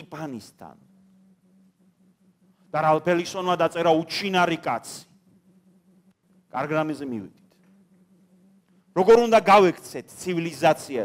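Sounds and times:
man speaking through microphone: 0:00.0 - 0:00.8, 0:02.7 - 0:05.1, 0:06.5 - 0:07.4, 0:08.9 - 0:11.0
faint steady hum: 0:00.0 - 0:11.0.

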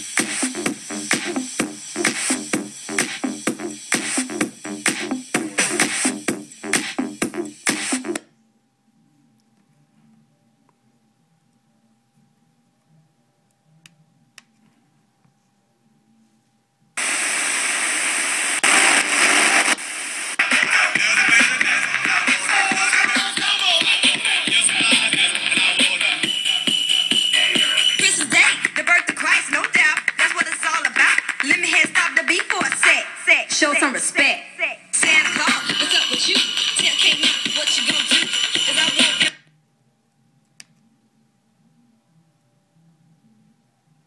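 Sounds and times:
music from radio: 0:00.0 - 0:08.4, 0:17.0 - 0:39.5
faint steady hum: 0:08.2 - 0:20.4, 0:39.4 - 0:44.0
radio static hiss: 0:17.0 - 0:23.6.

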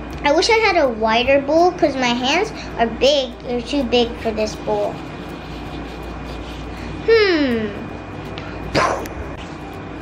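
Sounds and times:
low hum: 0:02.3 - 0:10.0.

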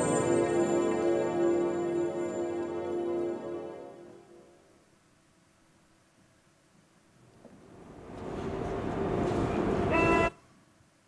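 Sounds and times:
horn-like tone: 0:00.0 - 0:04.6, 0:09.8 - 0:10.4
train recording over loudspeakers: 0:00.0 - 0:04.8, 0:07.7 - 0:10.4.

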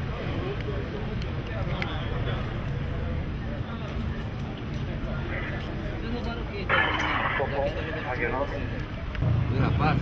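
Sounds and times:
street and vehicle rumble: 0:00.0 - 0:10.0
indistinct voices: 0:06.6 - 0:09.2.

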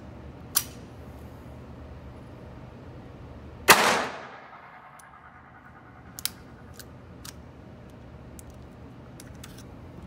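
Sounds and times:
pistol shot echoing indoors: 0:03.6 - 0:06.6.

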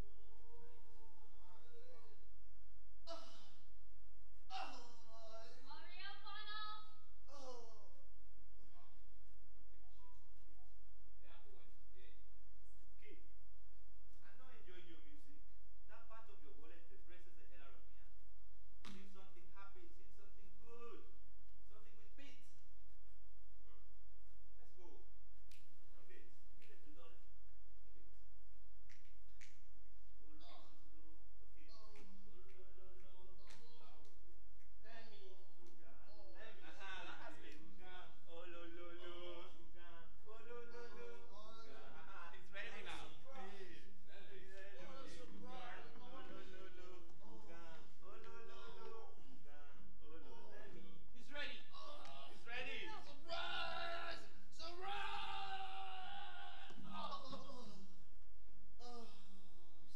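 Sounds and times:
finger snaps: 0:25.4 - 0:25.8, 0:28.8 - 0:29.7.

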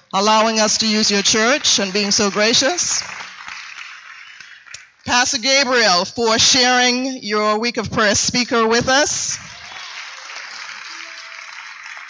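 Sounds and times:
light applause from audience: 0:01.3 - 0:05.0, 0:09.4 - 0:12.0.

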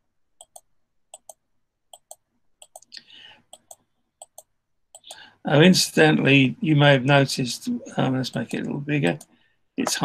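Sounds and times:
faint breath: 0:03.0 - 0:03.5, 0:05.0 - 0:05.4, 0:09.3 - 0:09.7.

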